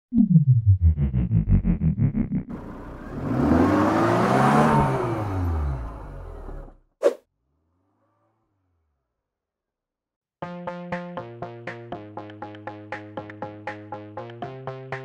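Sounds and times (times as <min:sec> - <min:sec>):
car engine revving: 0:01.4 - 0:06.8.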